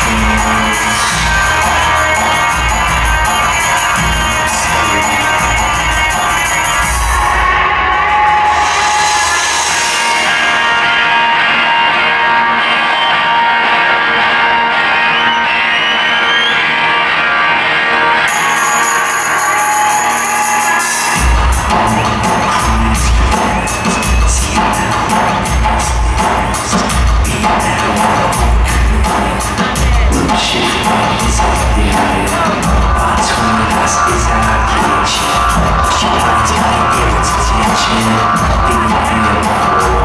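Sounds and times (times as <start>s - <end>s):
heavy bass and drum beat: 0.0s - 11.2s, 20.4s - 40.0s
synth and guitar tones: 0.0s - 40.0s.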